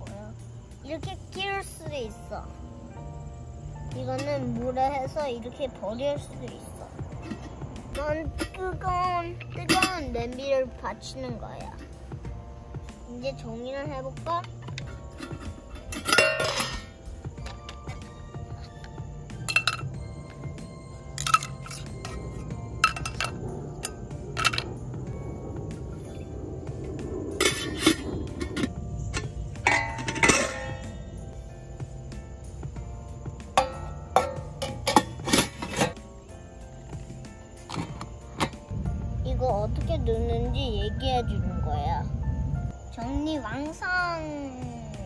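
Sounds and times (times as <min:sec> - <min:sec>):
background music: 0:00.0 - 0:45.0
metal pots clinking together: 0:09.6 - 0:10.1, 0:14.7 - 0:17.9, 0:19.4 - 0:20.0, 0:21.1 - 0:24.7, 0:27.4 - 0:31.0, 0:33.6 - 0:36.0, 0:37.6 - 0:38.6.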